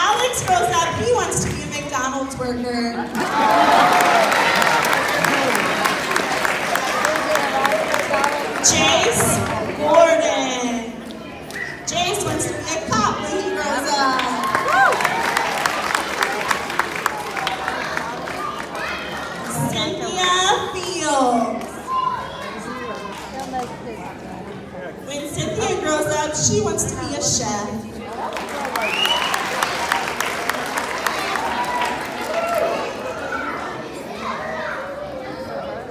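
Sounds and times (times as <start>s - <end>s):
crowd murmuring in a hall: 0.0s - 35.9s
audience clapping: 3.1s - 9.7s, 14.1s - 19.5s, 22.9s - 23.9s, 28.0s - 32.9s
young children chattering: 4.8s - 14.5s, 16.1s - 26.5s, 32.8s - 35.9s.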